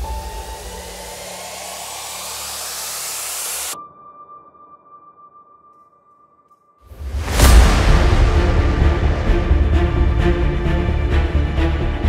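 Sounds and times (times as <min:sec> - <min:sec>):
white-noise riser: 0:00.0 - 0:03.8
steady high tone: 0:00.0 - 0:04.6
bass: 0:07.1 - 0:12.0.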